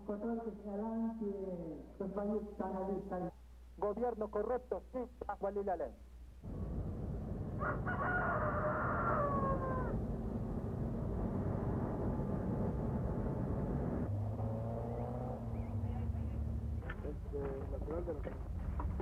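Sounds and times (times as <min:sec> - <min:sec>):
steady low rumble: 0:06.2 - 0:14.1
rooster crowing: 0:07.5 - 0:10.2.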